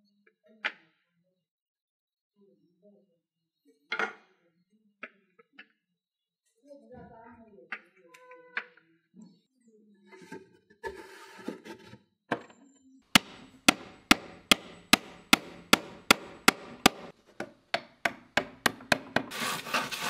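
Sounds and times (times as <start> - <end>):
saw rasping through board: 13.2 - 17.1, 18.1 - 20.0
hammer tapping wooden pegs: 13.2 - 19.3.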